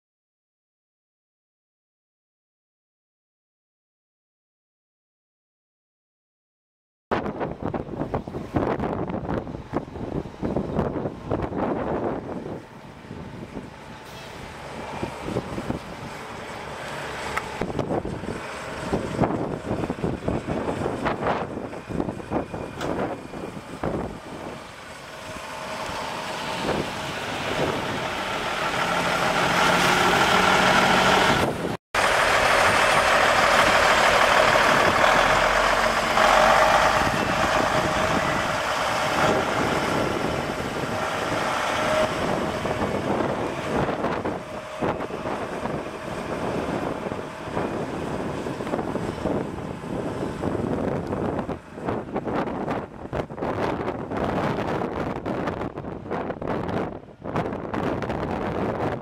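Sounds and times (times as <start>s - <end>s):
diesel truck engine running: 7.5s - 56.9s.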